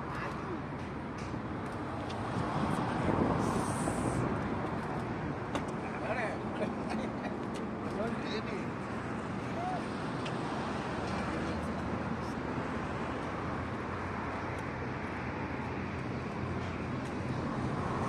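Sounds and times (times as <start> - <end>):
outdoor traffic hum: 0.0 - 18.0.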